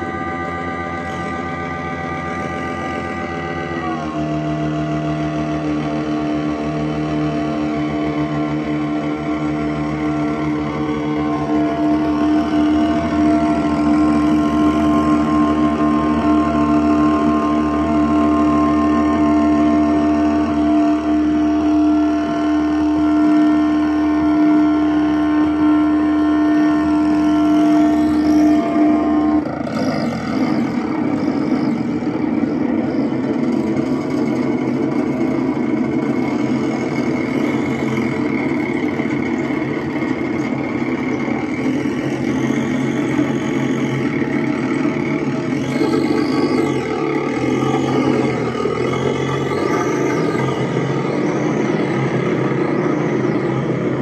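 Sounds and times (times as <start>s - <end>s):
experimental electronic noise: 0.0s - 54.0s.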